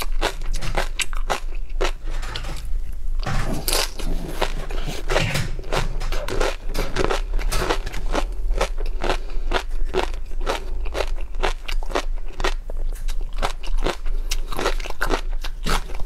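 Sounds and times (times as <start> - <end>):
wet crunchy chewing: 3.3 - 16.0.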